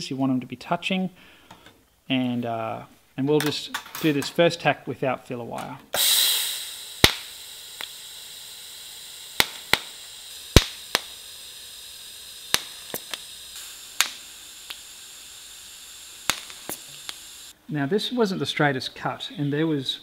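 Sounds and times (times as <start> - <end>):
welding arc hissing: 5.9 - 17.6
sharp clicks: 7.0 - 8.0, 9.4 - 11.3, 12.5 - 14.9, 16.2 - 17.2.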